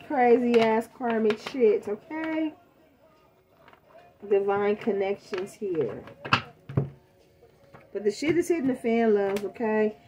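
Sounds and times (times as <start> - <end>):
deck of cards tapped on table: 5.3 - 7.0.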